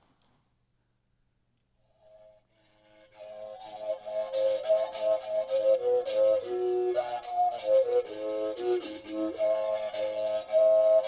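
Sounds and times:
mouth bow overtone melody: 1.9s - 11.0s.

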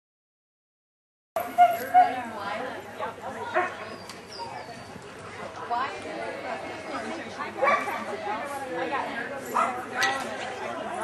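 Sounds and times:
spectators chattering: 1.4s - 11.0s
dog barking: 1.5s - 2.2s, 7.6s - 7.9s.

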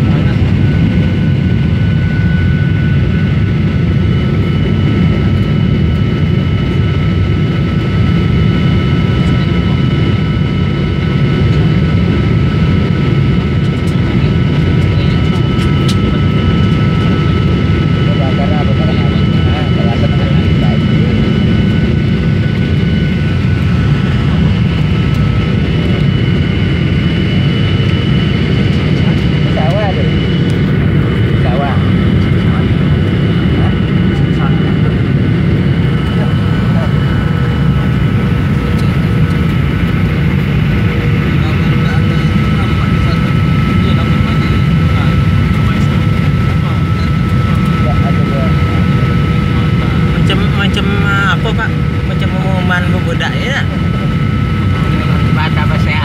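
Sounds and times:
jet engine cabin rumble: 0.0s - 56.0s.

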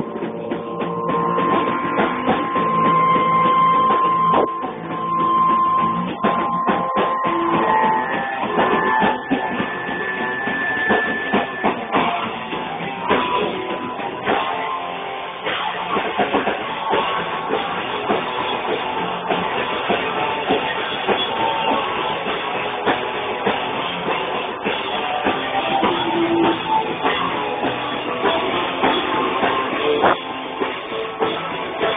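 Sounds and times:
drum kit: 0.0s - 31.9s
electric guitars: 0.0s - 31.9s.

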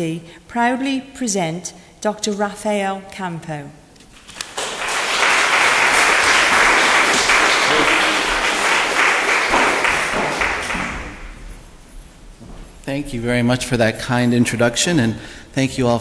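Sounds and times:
audience applauding: 4.2s - 11.4s.

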